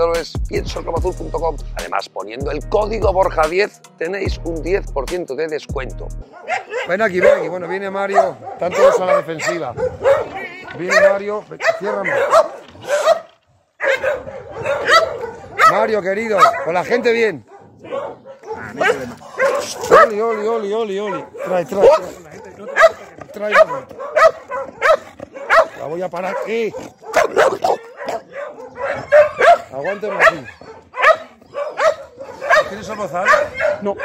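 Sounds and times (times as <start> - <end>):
dogs barking: 6.2 - 34.0.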